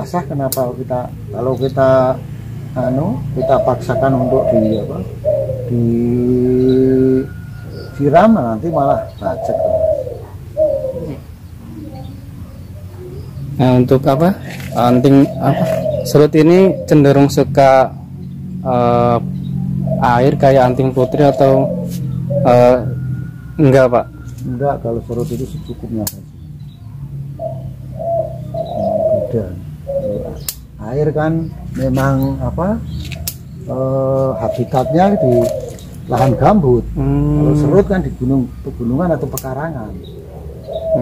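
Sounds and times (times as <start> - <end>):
dove cooing: 0.0 - 41.0
man's long hesitation sound: 36.4 - 38.6.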